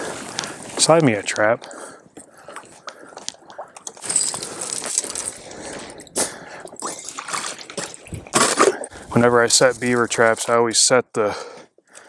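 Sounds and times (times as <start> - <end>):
sloshing in swamp water: 5.4 - 9.1
thin ice knocking and scraping: 7.4 - 8.9.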